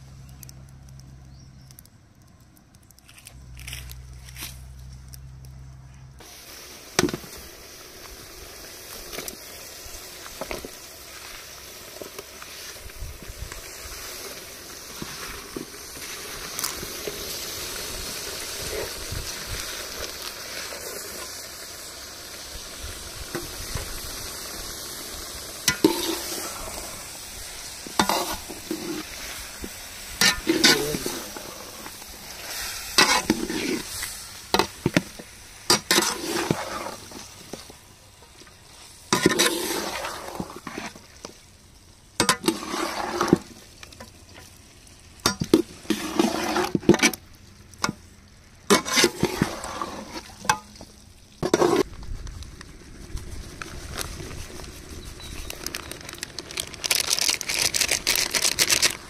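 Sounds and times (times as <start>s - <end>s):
food sizzling in a pot: 6.2s - 51.9s
metal spatula scraping a pot: 25.6s - 26.7s, 27.9s - 29.4s, 30.2s - 31.6s, 32.5s - 34.8s, 35.7s - 37.2s, 39.1s - 41.0s, 42.2s - 43.5s, 45.3s - 47.2s, 48.7s - 50.7s, 51.4s - 51.9s.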